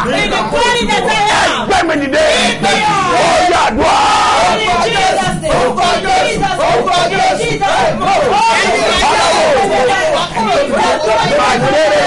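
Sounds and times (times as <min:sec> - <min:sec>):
voices praying and shouting: 0:00.0 - 0:12.0.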